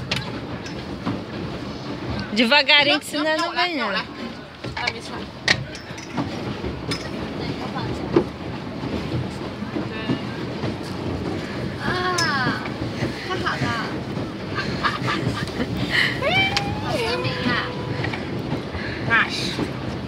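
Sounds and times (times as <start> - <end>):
pedal boat rattling rumble: 0.0 - 20.0
young women laughing and talking: 13.2 - 18.4.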